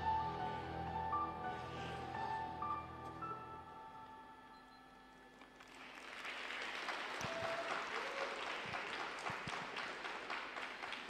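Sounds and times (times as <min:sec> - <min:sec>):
audience applause: 0:05.4 - 0:11.0.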